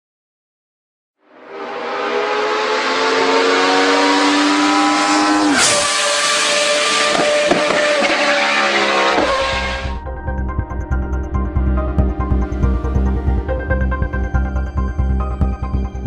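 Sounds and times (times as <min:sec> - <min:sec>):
racing car engine revving high: 0:01.2 - 0:10.0.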